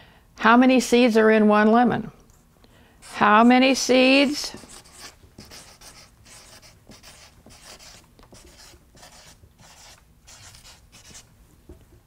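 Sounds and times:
marker scratching on paper: 3.0 - 11.3.

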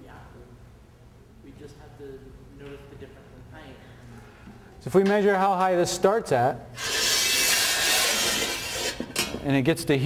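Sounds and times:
high-pitched rubbing noise: 6.8 - 9.0.

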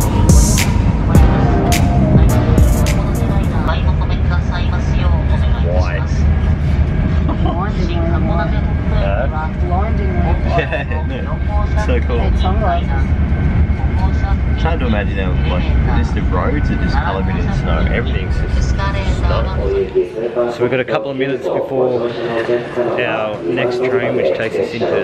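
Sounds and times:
train rumble: 0.0 - 20.9
indistinct voices: 0.0 - 25.0.

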